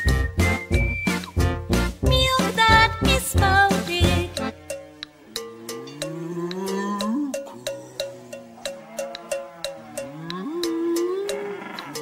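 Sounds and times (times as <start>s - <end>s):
light regular ticks: 4.4s - 5.2s, 5.9s - 12.0s
cow mooing: 4.4s - 12.0s.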